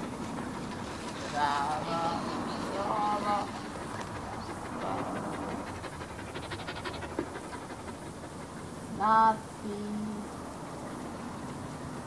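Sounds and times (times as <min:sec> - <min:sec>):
dog panting: 0:00.0 - 0:09.4.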